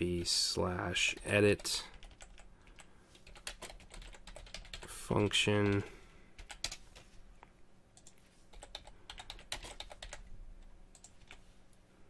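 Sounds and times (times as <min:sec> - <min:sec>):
keyboard typing: 0:01.6 - 0:04.9, 0:06.4 - 0:07.1, 0:08.0 - 0:10.3, 0:10.9 - 0:11.4.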